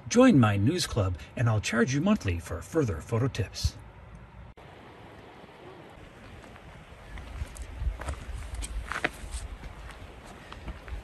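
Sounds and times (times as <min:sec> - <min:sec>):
wind buffeting microphone: 0:05.9 - 0:11.0.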